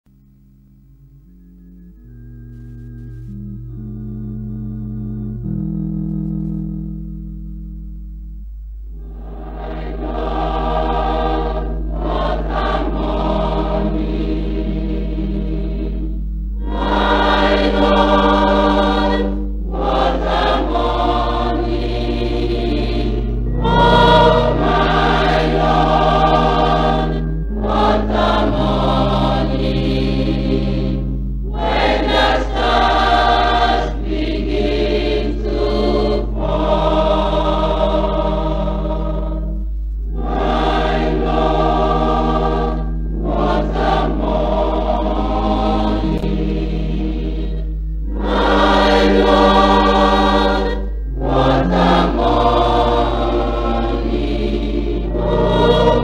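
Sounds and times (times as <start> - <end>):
steady low hum: 0.1 - 56.0
sustained low accompaniment: 0.1 - 56.0
choir singing a hymn: 9.0 - 56.0.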